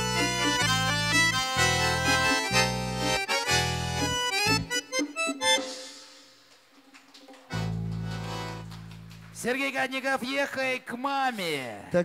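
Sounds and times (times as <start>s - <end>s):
button accordion playing chords: 0.0s - 6.4s, 7.5s - 9.0s.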